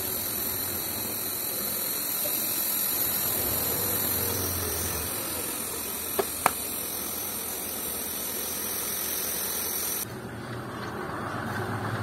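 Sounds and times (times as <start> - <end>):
sandblasting compressed air hiss: 0.0 - 10.0.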